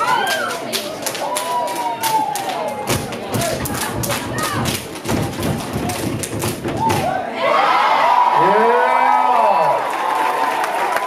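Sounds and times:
audience cheering and screaming: 6.8s - 11.0s.

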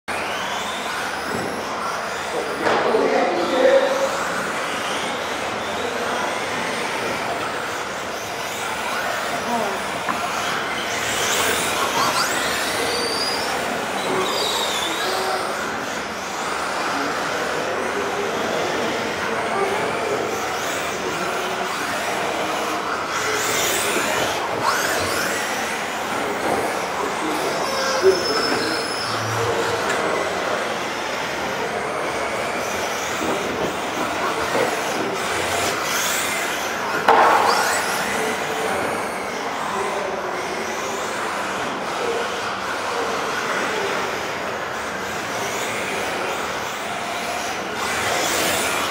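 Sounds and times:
electric motors whining: 0.1s - 48.9s
radio-controlled cars running: 0.1s - 48.9s.

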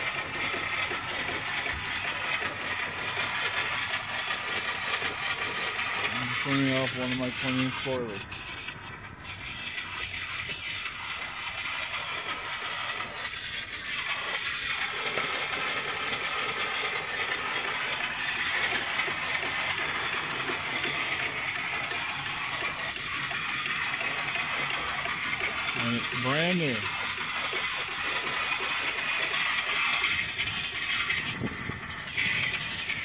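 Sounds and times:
steam venting hiss: 0.0s - 33.0s.

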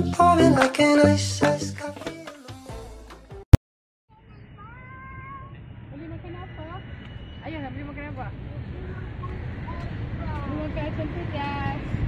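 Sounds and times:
background music: 0.0s - 3.4s.

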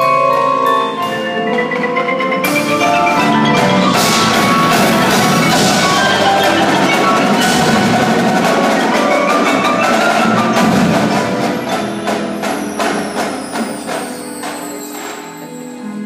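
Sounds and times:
percussion ensemble with marimbas: 0.0s - 16.0s.

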